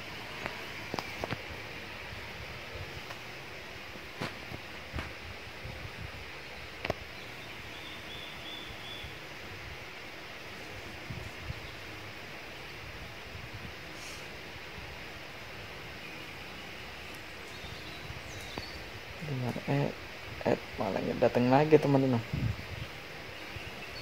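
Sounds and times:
steady hiss: 0.0 - 24.0.

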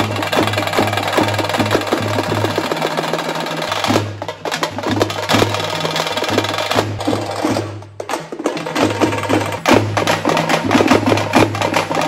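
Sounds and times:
barrel drums beaten with sticks: 0.0 - 12.0.

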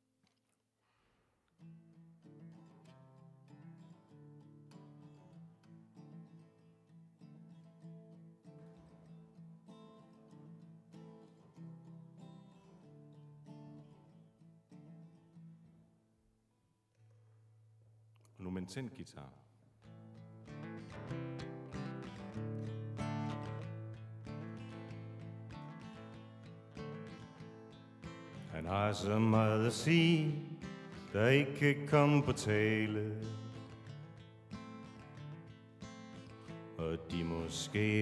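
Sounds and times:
acoustic guitar playing: 1.6 - 16.0, 19.8 - 38.0.

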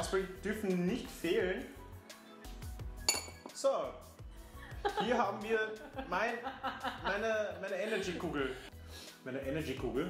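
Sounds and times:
metal spoon clinking on dish: 3.0 - 3.6.

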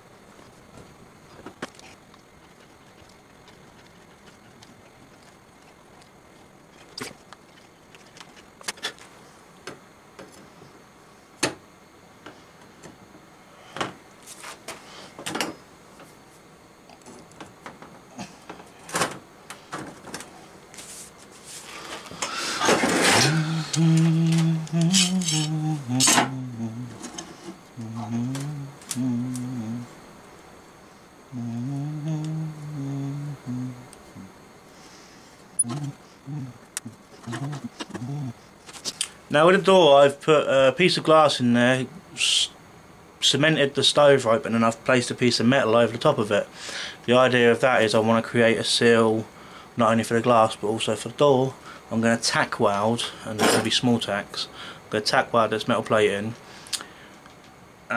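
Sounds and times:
man humming a tune: 22.3 - 27.2, 27.8 - 30.0, 31.3 - 34.4, 35.6 - 38.5.

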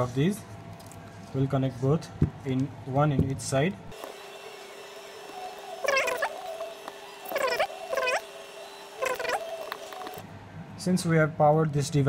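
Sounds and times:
pitched animal-like calls: 5.8 - 6.4, 7.3 - 8.2, 9.0 - 9.7.

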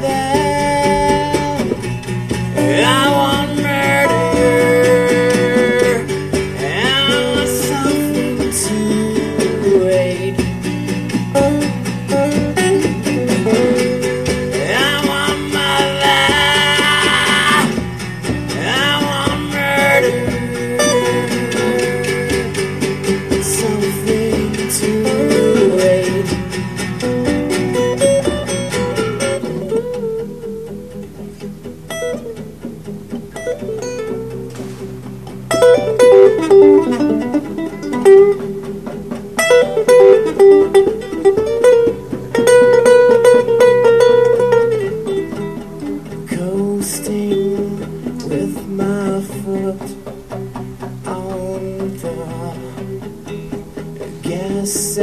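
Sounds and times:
lead acoustic guitar picking: 0.0 - 55.0
rhythm guitar: 0.0 - 55.0.

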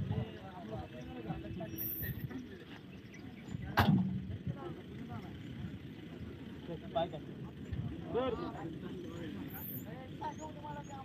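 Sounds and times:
faint voices: 0.0 - 11.0
low outdoor rumble: 0.0 - 11.0.

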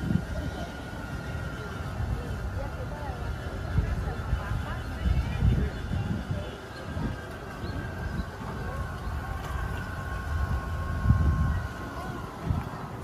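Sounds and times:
low rumbling on microphone: 0.0 - 13.0.

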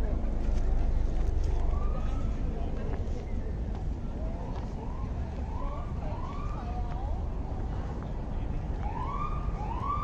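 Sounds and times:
steady low rumble: 0.0 - 8.8.

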